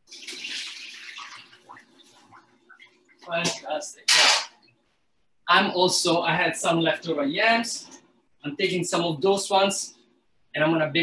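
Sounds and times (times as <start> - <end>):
water poured through a strainer: 0.1 - 3.2.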